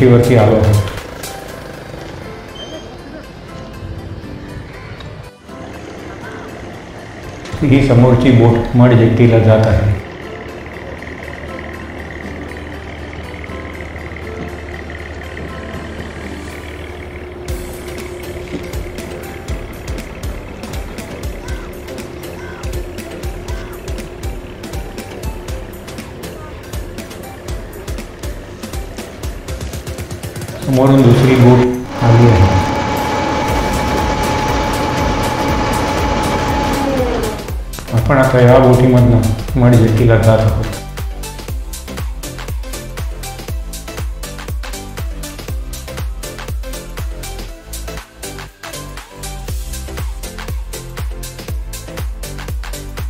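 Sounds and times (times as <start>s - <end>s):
boat engine humming: 0.0s - 53.0s
steady high whine: 6.2s - 40.8s.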